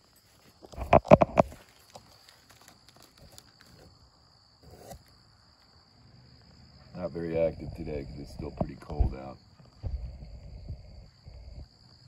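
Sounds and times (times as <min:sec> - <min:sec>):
high insect trill: 0:00.0 - 0:12.0
paper bag rustling: 0:01.4 - 0:03.9.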